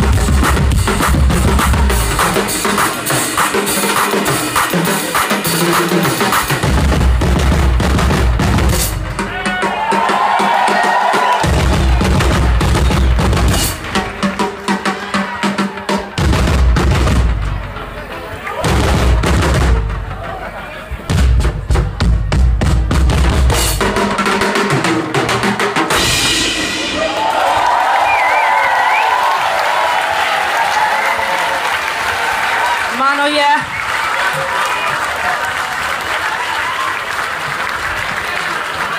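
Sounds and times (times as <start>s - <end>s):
bass drum: 0.0s - 3.2s, 6.0s - 9.4s, 11.4s - 14.4s, 16.2s - 17.8s, 18.6s - 20.4s, 21.0s - 24.8s
live band amplified music: 0.0s - 38.9s
snare drum: 9.8s - 14.8s.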